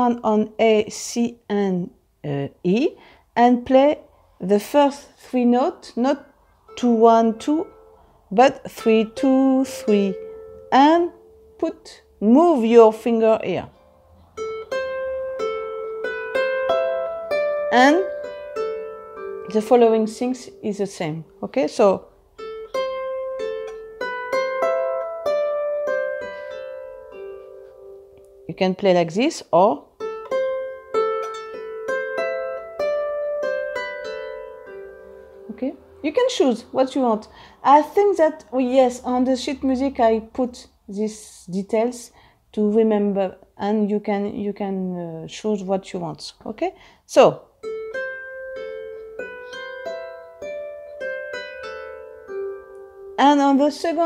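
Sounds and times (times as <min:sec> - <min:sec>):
harp plucked notes: 0:06.7 - 0:37.2, 0:47.6 - 0:54.0.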